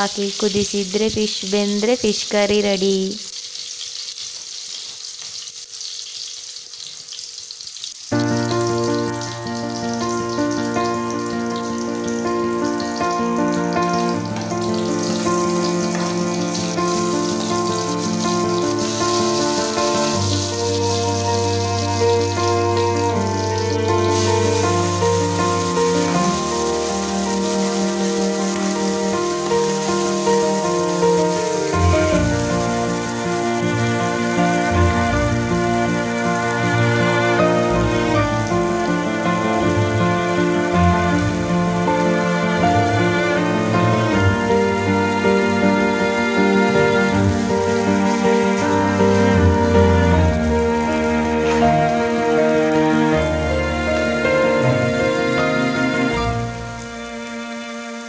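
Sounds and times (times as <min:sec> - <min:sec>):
curry sizzling in a pan: 0:00.0 - 0:58.0
slow instrumental background music: 0:08.1 - 0:58.0.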